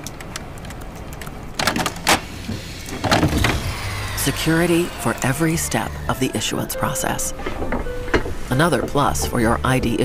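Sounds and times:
printer motor whir: 2.2 - 6.5.

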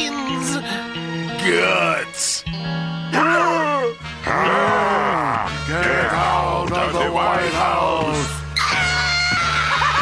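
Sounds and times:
background music: 0.0 - 10.0
man crying out: 3.1 - 5.5.

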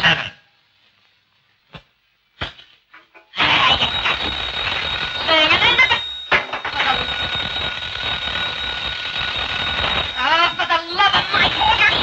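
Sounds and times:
telephone bell ringing: 3.4 - 12.0.

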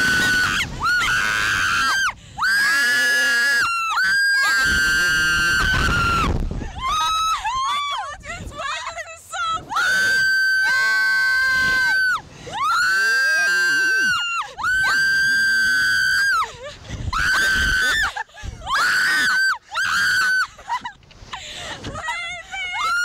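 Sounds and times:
women screaming: 0.0 - 8.8, 9.6 - 20.9, 21.9 - 23.0.

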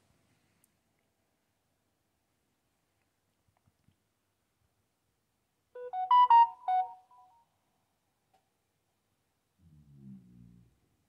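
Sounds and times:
phone melodic chime: 5.8 - 7.0.

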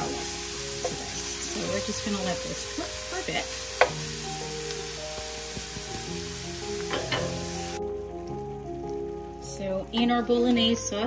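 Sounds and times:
background music: 0.0 - 11.0
onion sizzling in oil: 0.0 - 11.0.

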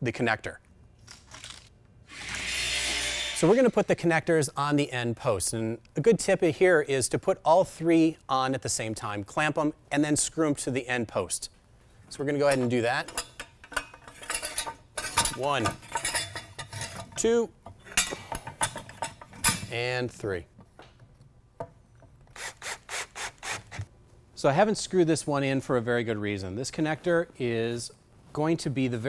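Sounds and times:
metal connectors clinking on wood: 12.4 - 19.9.

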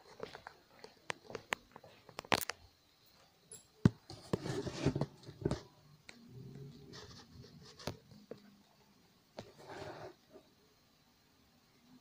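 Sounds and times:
hand rubbing against phone: 6.8 - 8.0.

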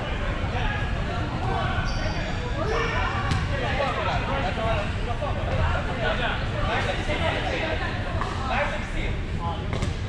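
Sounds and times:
players' voices in gym hall: 0.0 - 10.0
ball bouncing on hardwood court: 3.3 - 3.5.

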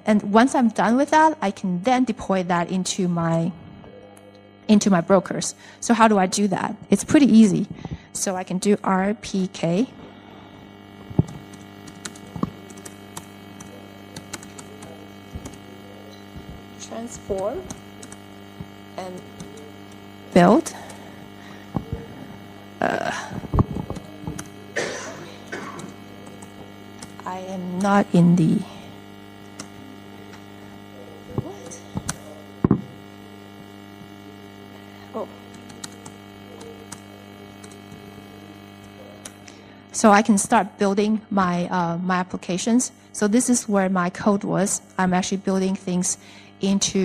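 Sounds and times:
electrical mains hum: 0.0 - 47.0.

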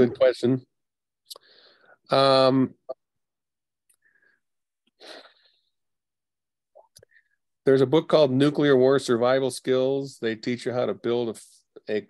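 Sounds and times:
sharp breath or sniff: 5.0 - 5.6.

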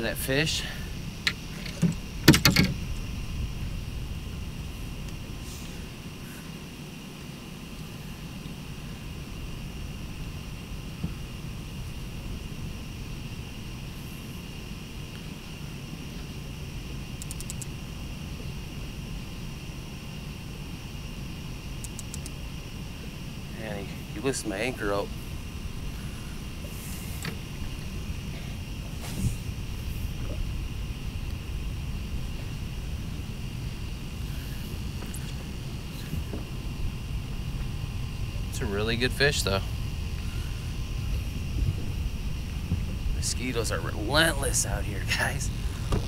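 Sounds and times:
continuous low rumble: 0.0 - 46.0
gear knocking against boat: 1.2 - 2.8.

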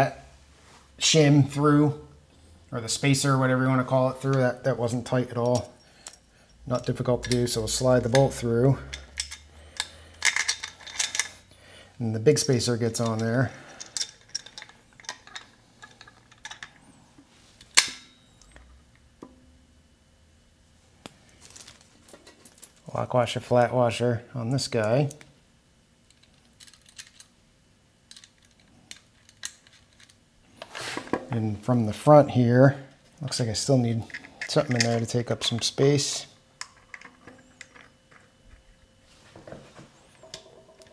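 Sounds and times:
person speaking: 6.6 - 9.1, 30.9 - 36.4
metal bolt clicking and clinking: 6.8 - 11.4, 13.0 - 16.8, 17.6 - 18.6, 36.6 - 38.3.

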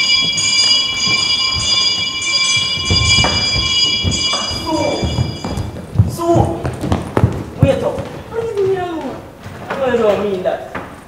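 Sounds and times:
high bell-like ringing: 0.0 - 6.6
footsteps on wooden stage: 0.0 - 11.0.

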